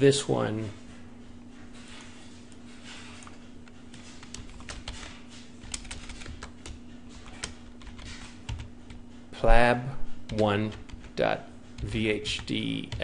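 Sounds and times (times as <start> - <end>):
computer keyboard typing: 3.9 - 9.0, 10.2 - 13.0.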